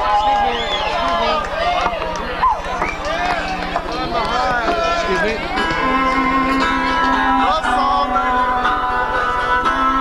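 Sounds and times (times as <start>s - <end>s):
crowd voices and shouts: 0.0s - 10.0s.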